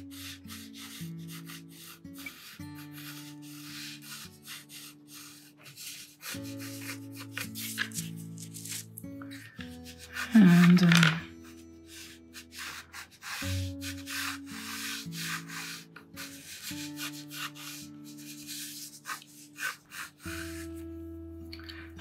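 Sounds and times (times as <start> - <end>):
pencil scratching on paper: 0.0 - 21.0
soft background music: 0.0 - 22.0.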